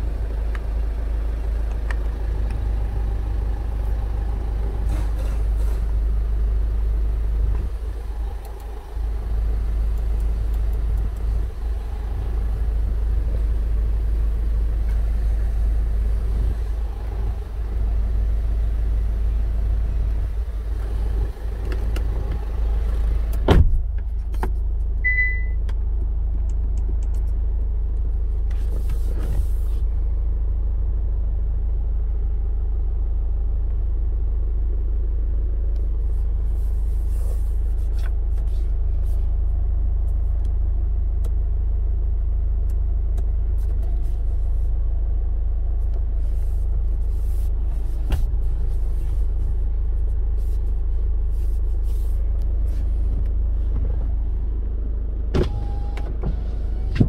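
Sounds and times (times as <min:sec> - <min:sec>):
car engine idling: 0:00.0 - 0:57.0
short electronic beep: 0:25.1 - 0:25.6.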